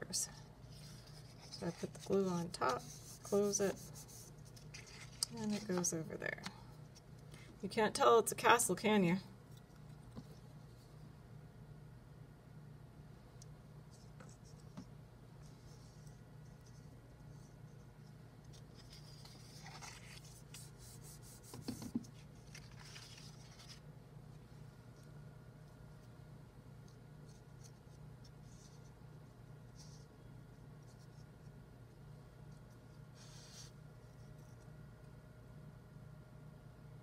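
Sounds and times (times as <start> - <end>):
faint low hum: 0.0 - 37.0
paper rustling: 0.6 - 5.9, 18.5 - 23.9.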